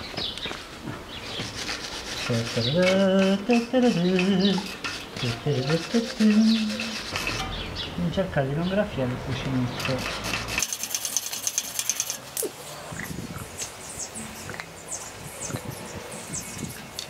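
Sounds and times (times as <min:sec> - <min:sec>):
wire brush scrubbing metal: 0:01.3 - 0:07.7, 0:09.6 - 0:12.5
man making wordless sounds: 0:02.3 - 0:06.9.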